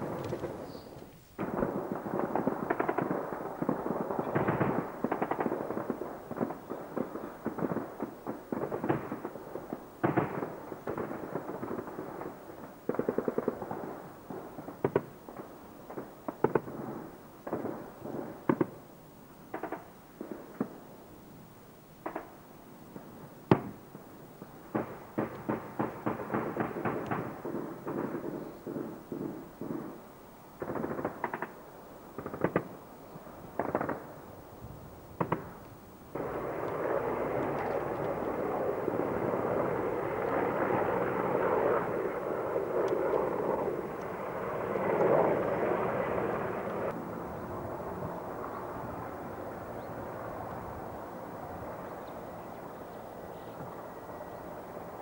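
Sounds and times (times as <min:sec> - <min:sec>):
helicopter in flight: 0:36.2 - 0:55.0.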